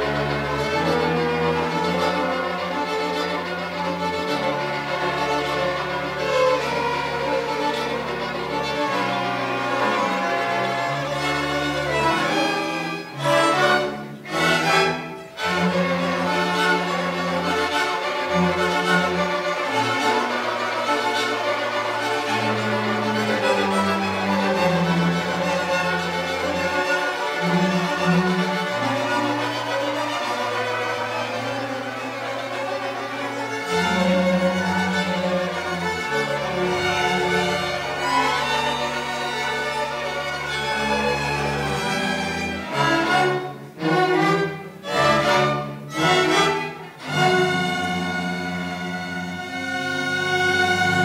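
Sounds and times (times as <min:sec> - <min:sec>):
string orchestra playing: 0:00.0 - 0:51.0.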